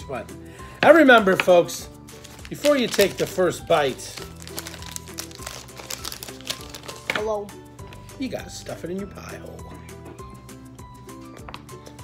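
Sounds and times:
light background music: 0:00.0 - 0:12.0
candy wrapper crinkling: 0:02.1 - 0:07.3.

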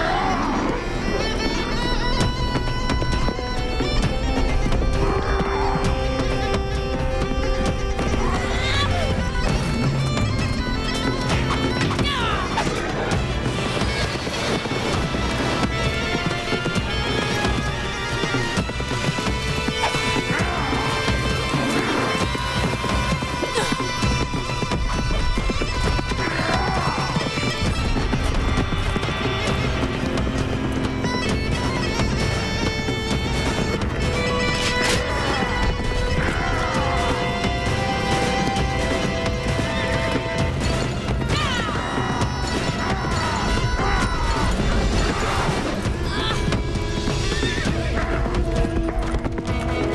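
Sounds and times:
dramatic orchestral music: 0:00.0 - 0:49.9
horse hoofbeats galloping: 0:00.0 - 0:49.9.

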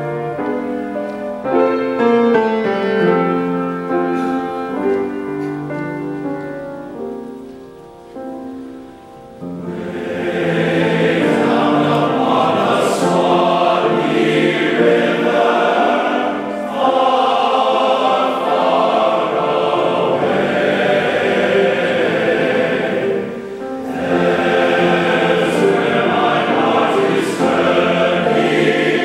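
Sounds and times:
piano chords: 0:00.0 - 0:29.0
men's chorus singing: 0:09.6 - 0:29.0.

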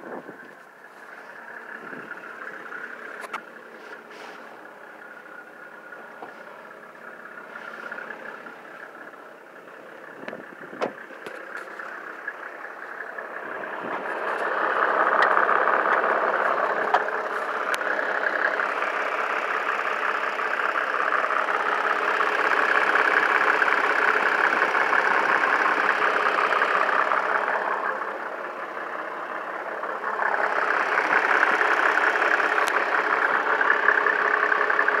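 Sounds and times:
diesel engine idling: 0:00.0 - 0:35.0.

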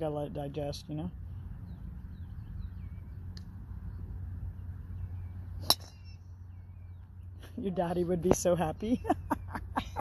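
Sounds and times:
golf club striking ball: 0:05.6 - 0:06.2.

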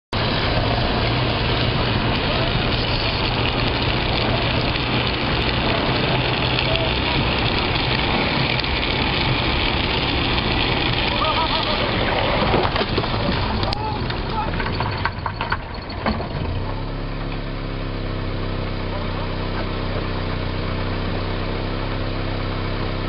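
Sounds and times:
wheels rolling on asphalt: 0:00.1 - 0:23.0.

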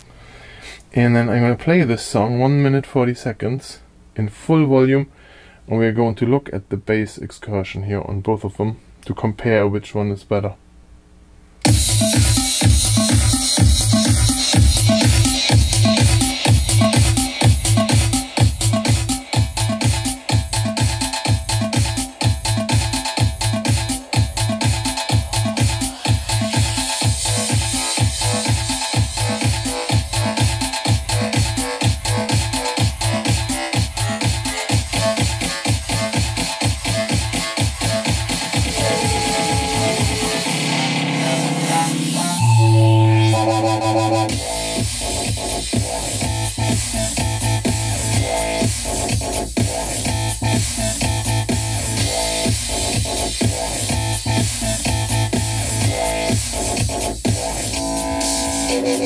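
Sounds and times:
electronic dance music with heavy bass: 0:11.6 - 0:59.0
deep sustained bass line: 0:42.4 - 0:44.6.

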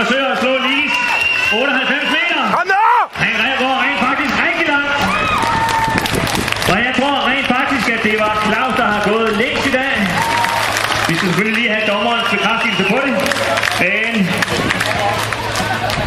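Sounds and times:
man talking over loudspeaker: 0:00.0 - 0:05.1, 0:06.7 - 0:10.2, 0:11.1 - 0:14.4
crowd clapping: 0:00.0 - 0:16.0.

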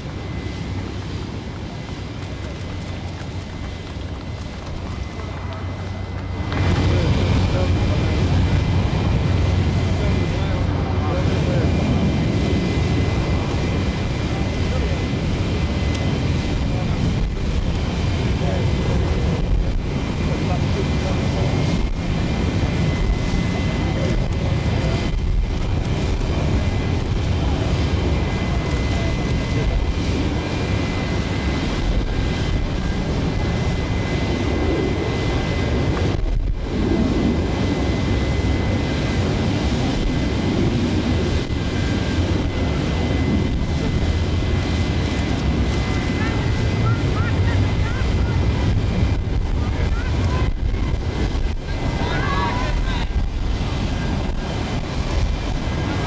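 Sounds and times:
jet airliner rumble and whine: 0:00.0 - 0:56.0.

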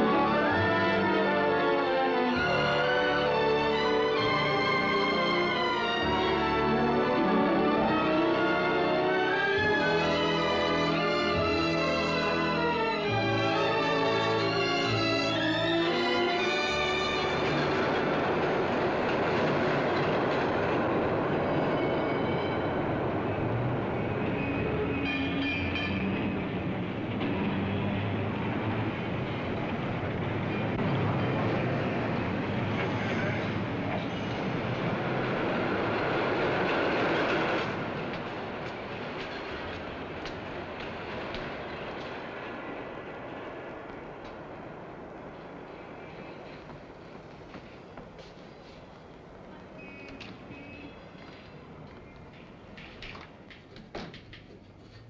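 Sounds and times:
elevated train running past: 0:00.0 - 0:55.0.

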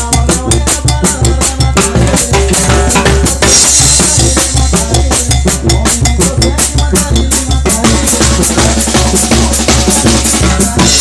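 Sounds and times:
bass drum beat: 0:00.0 - 0:11.0
snare drums: 0:00.0 - 0:11.0.

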